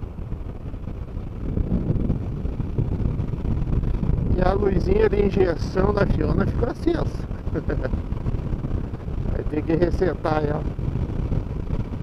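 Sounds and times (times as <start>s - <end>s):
motorcycle engine drone: 0.0s - 12.0s
road noise: 0.0s - 12.0s
wind rushing over microphone: 0.0s - 12.0s.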